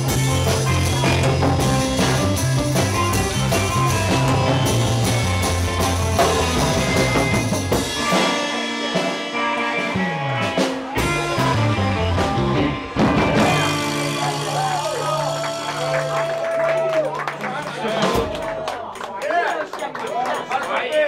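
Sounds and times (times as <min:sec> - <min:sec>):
surf-rock band playing: 0:00.0 - 0:18.8
wavering high guitar note: 0:08.0 - 0:16.4.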